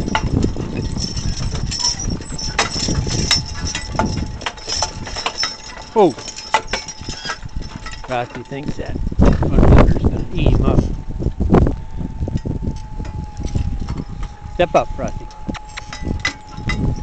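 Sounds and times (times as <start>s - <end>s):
harness chains jingling: 0.0s - 10.9s, 12.4s - 17.0s
wind rumble on microphone: 0.0s - 17.0s.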